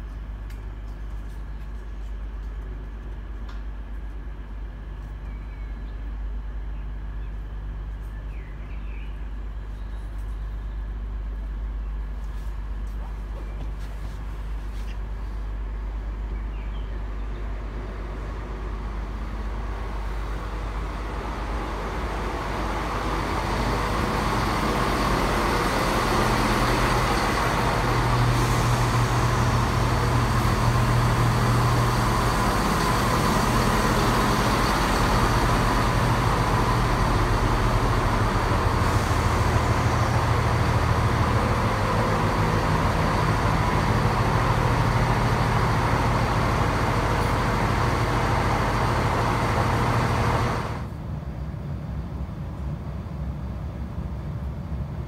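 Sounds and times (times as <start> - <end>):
diesel train engines running: 0.0 - 55.0.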